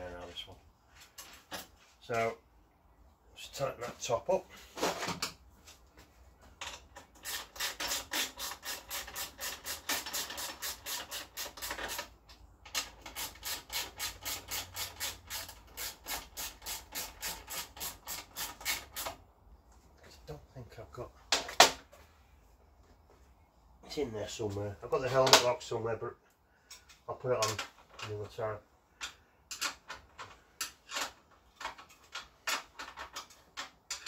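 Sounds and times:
ratchet spanner clicking rapidly: 7.2s - 11.9s.

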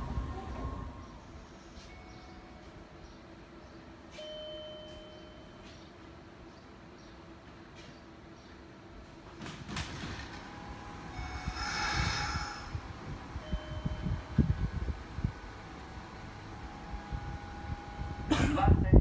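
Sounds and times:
electric train standing: 10.1s - 18.2s
air release hiss: 11.5s - 12.8s.

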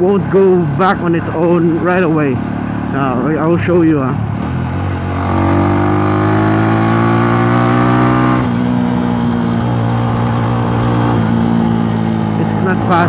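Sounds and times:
motorcycle engine revving: 0.0s - 13.0s.

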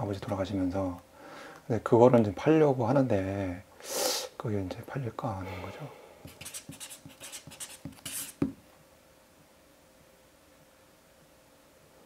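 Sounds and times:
pen scratching on paper: 6.2s - 8.5s
pen tap: 6.2s - 8.6s.

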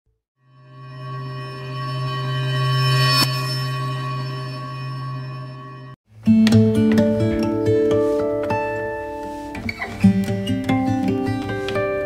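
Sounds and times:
bell-like electronic drone: 0.4s - 6.0s.

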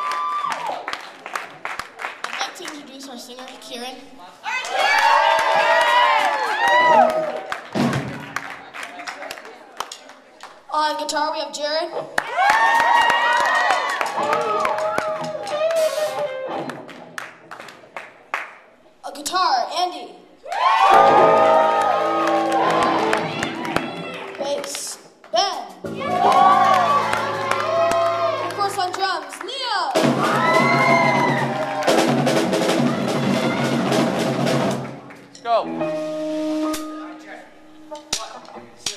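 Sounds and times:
audience clapping and cheering: 0.0s - 10.9s, 12.1s - 18.8s, 20.4s - 25.3s, 25.9s - 35.4s
rock band playing live: 14.1s - 17.2s, 20.9s - 24.8s, 30.0s - 38.6s.

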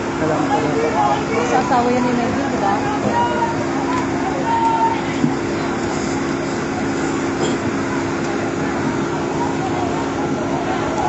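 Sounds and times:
engine-like drone: 0.0s - 11.0s.

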